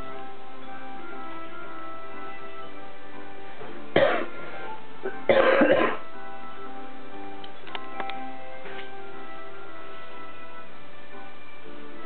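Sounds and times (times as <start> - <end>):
television background music: 0.0 - 12.0
person coughing: 4.0 - 4.4, 5.1 - 6.0.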